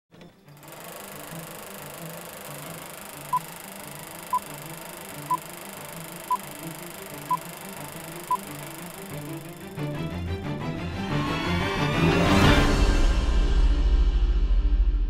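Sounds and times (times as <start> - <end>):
projector whirr and clatter: 0.5 - 9.8
short high beeps: 2.8 - 9.5.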